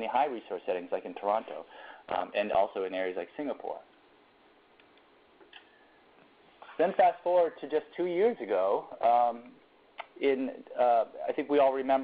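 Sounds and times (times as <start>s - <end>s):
faint recording hiss: 0.0s - 12.0s.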